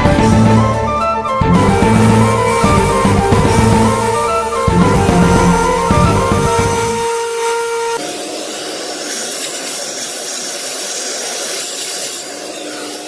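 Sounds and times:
milling spindle whining: 1.4s - 13.0s
cutting hiss: 1.6s - 13.0s.

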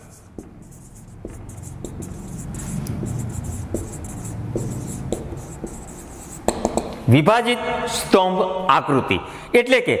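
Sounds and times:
marker pen writing on whiteboard: 0.0s - 7.0s
steady low hum: 0.0s - 7.1s.

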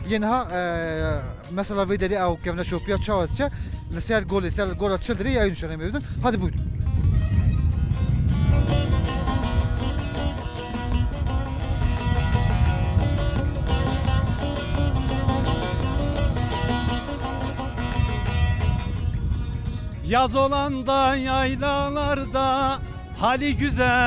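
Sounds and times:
long-necked lutes strummed: 6.8s - 24.0s.

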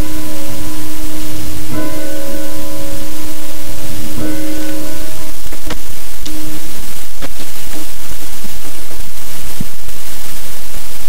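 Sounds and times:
church bell tolling: 0.0s - 7.2s
steady hiss: 5.1s - 11.0s.

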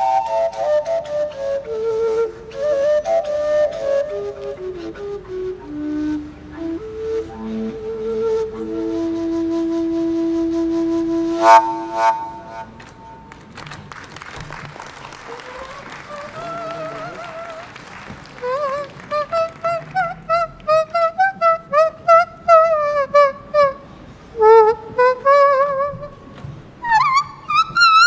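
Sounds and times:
warbling whistle melody: 0.0s - 13.3s
wind instrument held note: 11.3s - 13.2s
applause: 12.8s - 20.7s.

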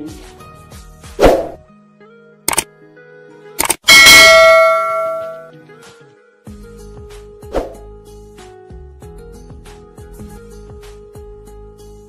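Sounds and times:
quick double click: 2.5s - 2.7s, 3.6s - 3.9s
bright bell ding: 3.9s - 5.5s.

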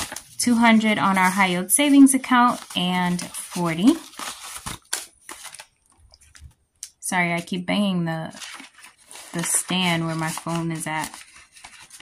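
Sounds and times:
banknotes rustling and flicking: 0.0s - 6.6s, 8.2s - 12.0s.

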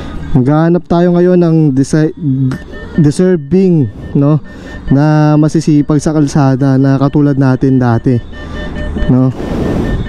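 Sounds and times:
cash machine short high beeps: 1.5s - 10.0s.

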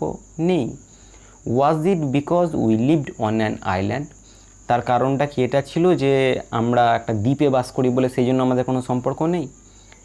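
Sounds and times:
person talking: 0.0s - 9.6s
high-pitched hiss: 0.0s - 10.0s.

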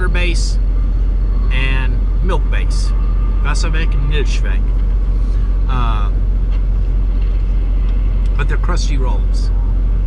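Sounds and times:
truck diesel engine idling: 0.0s - 10.0s.

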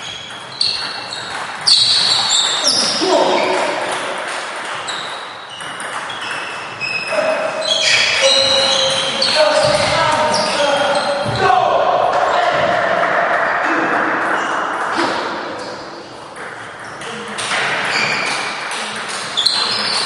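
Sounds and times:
shoes squeaking on floor: 0.0s - 11.6s, 16.4s - 20.0s
loud voice calling out: 9.4s - 15.0s.

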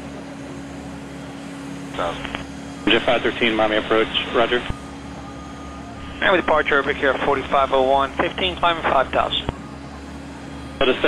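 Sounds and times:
steady low hum with tone: 0.0s - 11.0s
radio voice transmission: 2.0s - 4.8s, 5.9s - 9.6s, 10.7s - 11.0s.

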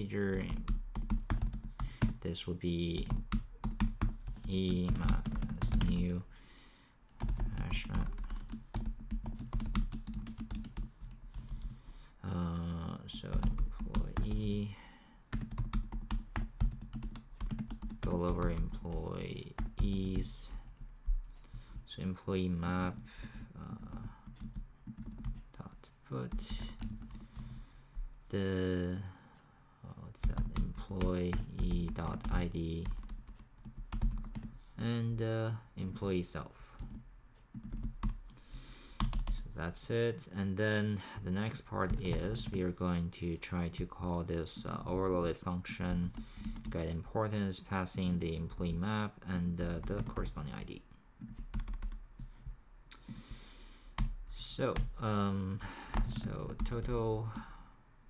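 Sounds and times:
rapid typing on keyboard: 0.3s - 2.2s, 3.0s - 6.2s, 7.2s - 11.9s, 13.1s - 14.6s, 15.3s - 20.8s, 23.0s - 27.8s, 30.2s - 34.6s, 36.8s - 37.0s, 37.6s - 39.4s, 41.8s - 42.8s, 45.8s - 46.8s, 49.7s - 50.4s, 51.2s - 52.3s, 55.8s - 57.5s.

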